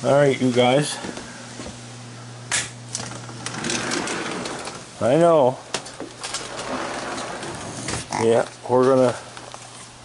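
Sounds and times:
steady low hum: 0.0 - 10.0
door clicks and rattling slide: 3.0 - 4.8, 5.8 - 8.1.

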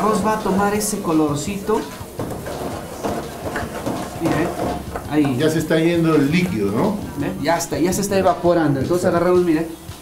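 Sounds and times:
food sizzling in a metal pan: 0.0 - 10.0
wooden spoon stirring and scraping: 0.0 - 10.0.

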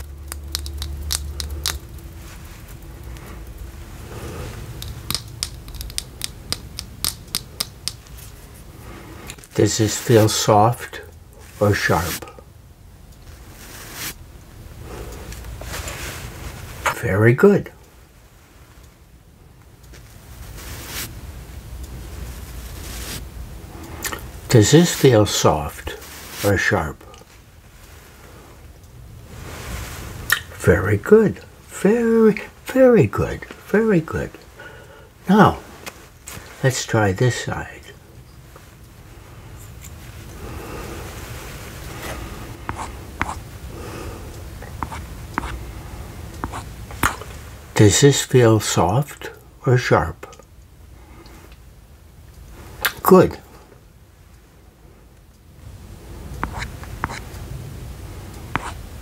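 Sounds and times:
low hum: 0.0 - 9.4
makeup brush crackling scratches: 0.3 - 2.8, 4.8 - 8.4, 42.0 - 43.4, 44.6 - 45.6, 46.4 - 47.4, 56.4 - 57.3, 58.5 - 58.8
brush bristles rustling on microphone: 0.5 - 6.0, 9.4 - 10.6, 11.4 - 12.4, 13.3 - 14.2, 15.2 - 16.9, 20.0 - 21.2, 22.1 - 23.3, 24.7 - 28.2, 29.3 - 30.3, 44.6 - 45.7, 46.4 - 47.6.

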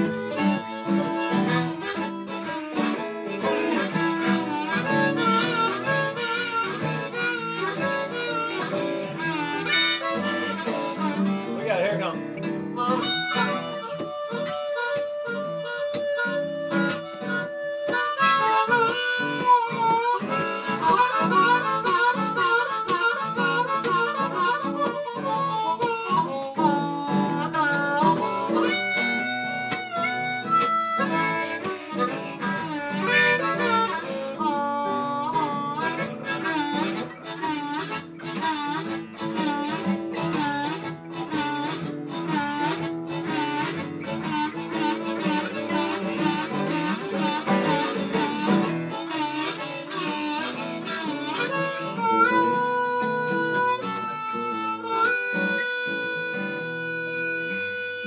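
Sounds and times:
harmonica playing blues: 0.0 - 58.0
strummed acoustic guitar: 0.0 - 58.0.

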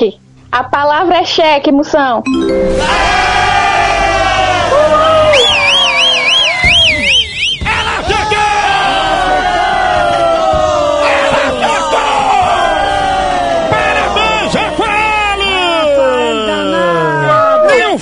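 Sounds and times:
crowd cheering and yelling: 2.3 - 18.0
fast warbling whistle: 4.9 - 8.1.

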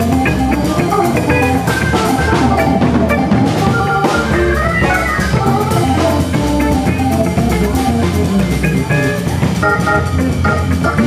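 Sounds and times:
drum kit: 0.0 - 11.0
organ: 0.0 - 11.0.

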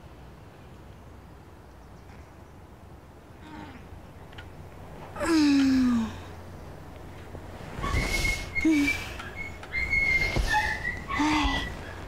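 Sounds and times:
thin high whistle-like tone: 7.8 - 11.5.

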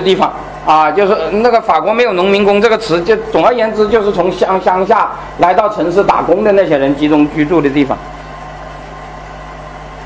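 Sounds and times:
low hum of sound system: 0.0 - 10.0.

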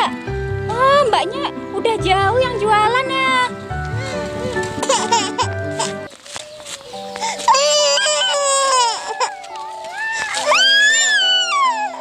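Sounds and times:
toddler crying: 3.9 - 12.0.

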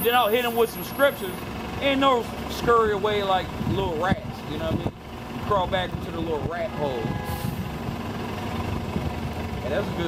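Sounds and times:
heavy vehicle engine rumbling: 0.0 - 10.0.

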